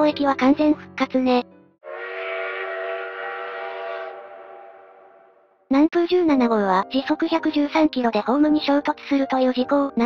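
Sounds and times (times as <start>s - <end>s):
train whistle blast: 1.8s - 5.6s.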